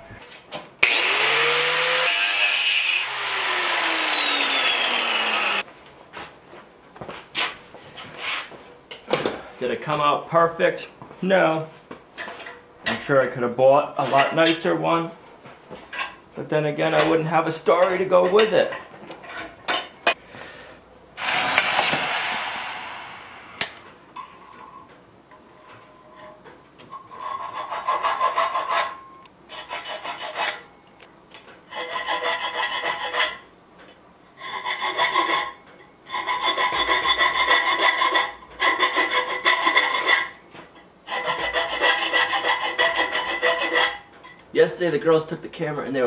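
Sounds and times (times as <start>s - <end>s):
file rasping on steel rod: 0.9s - 5.6s, 27.1s - 30.7s, 31.7s - 33.4s, 34.4s - 40.3s, 41.1s - 44.1s.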